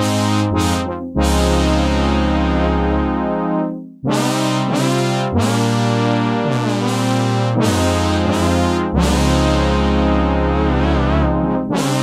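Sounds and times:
synthesizer brass chords: 0:00.0 - 0:12.0.

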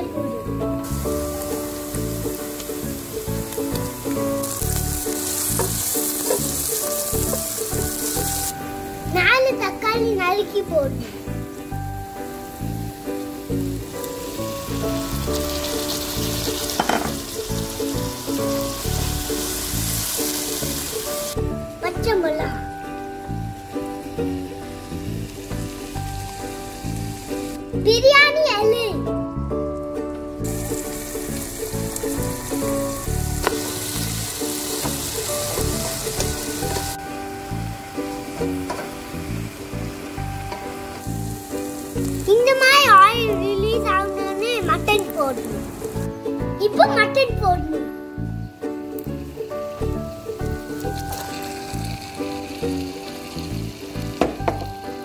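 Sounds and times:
food sizzling in a pot: 0:00.0 - 0:29.0, 0:29.7 - 0:55.0
background music: 0:00.0 - 0:55.0.

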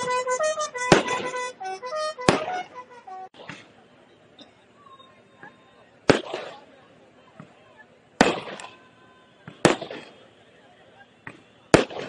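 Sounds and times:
firecracker bangs with echo: 0:00.7 - 0:01.5, 0:02.2 - 0:02.7, 0:06.1 - 0:06.7, 0:08.2 - 0:08.8, 0:09.5 - 0:10.3, 0:11.7 - 0:12.0.

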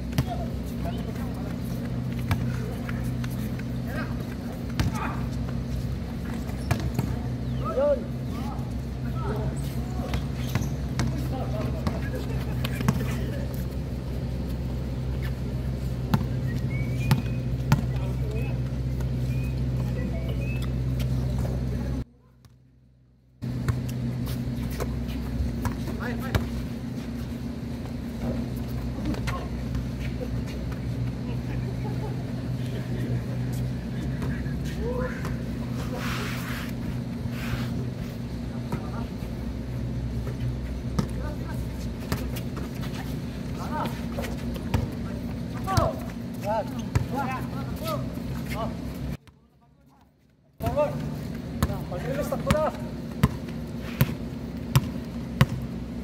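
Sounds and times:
low mechanical hum: 0:00.0 - 0:56.0.

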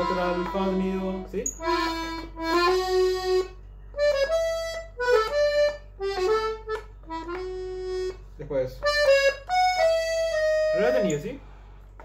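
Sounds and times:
accordion melody: 0:00.0 - 0:11.5.

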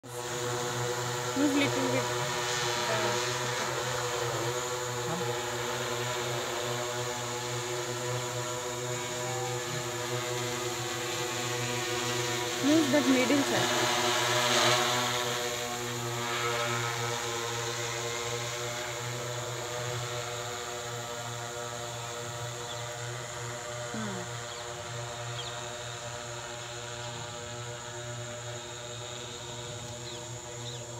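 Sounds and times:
drone propellers humming: 0:00.0 - 0:30.9.

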